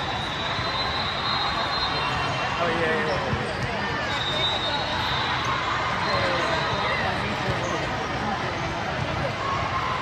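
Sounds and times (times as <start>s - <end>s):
many voices talking: 0.0s - 10.0s.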